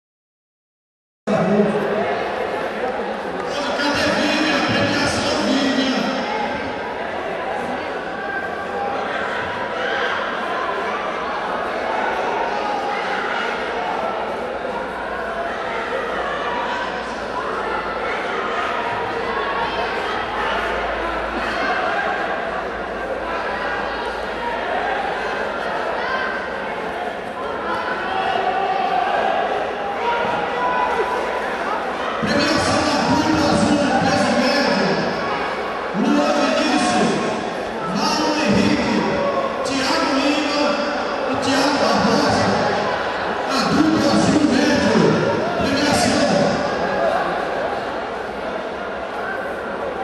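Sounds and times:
crowd noise: 0:01.3 - 0:50.0
voices echoing in a hall: 0:01.3 - 0:50.0.

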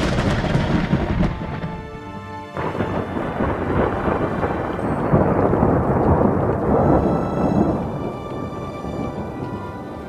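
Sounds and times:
heavy rain: 0:00.0 - 0:10.0
rolling thunder: 0:00.0 - 0:10.0.

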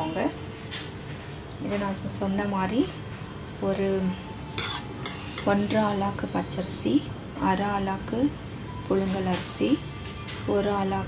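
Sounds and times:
short sharp spoon clinks: 0:04.6 - 0:05.6
spoon scraping metal pot: 0:04.6 - 0:05.6.

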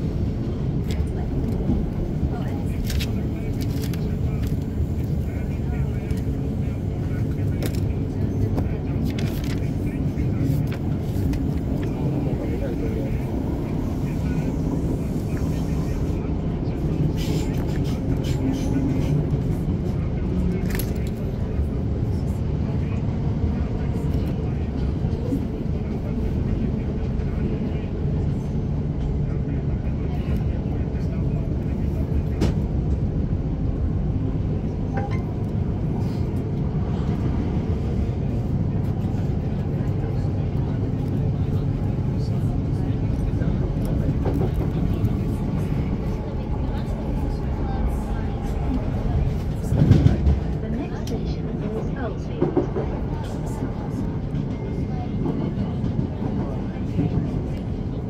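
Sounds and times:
train wheels rumbling on track: 0:00.0 - 0:58.0.

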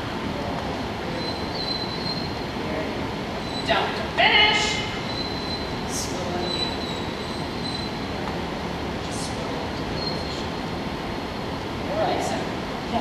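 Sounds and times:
indoor hall background noise: 0:00.0 - 0:13.0.

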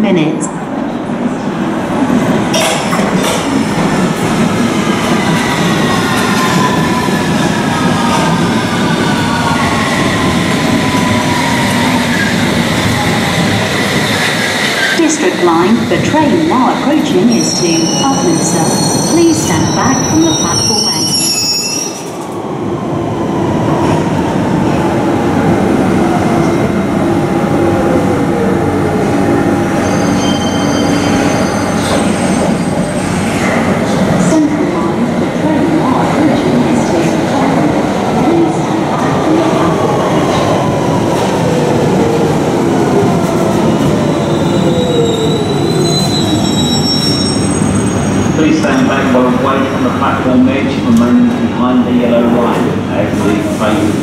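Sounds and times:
high wheel squeals: 0:29.8 - 0:32.6, 0:44.1 - 0:48.4.

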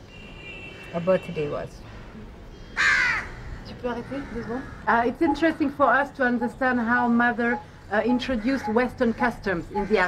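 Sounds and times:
crow cawing: 0:02.6 - 0:05.3, 0:08.2 - 0:10.0.

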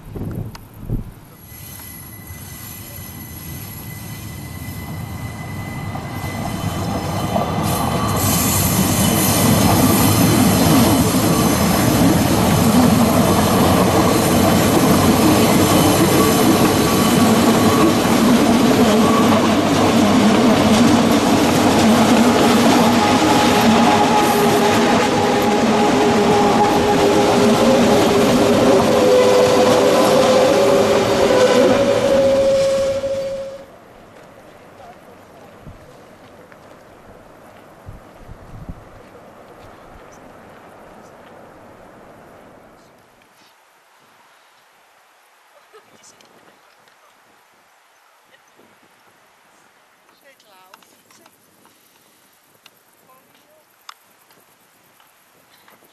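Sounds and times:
train rolling rumble on rails: 0:00.0 - 0:43.0
train wheels squealing: 0:01.3 - 0:12.8, 0:13.4 - 0:20.6, 0:22.3 - 0:33.7.

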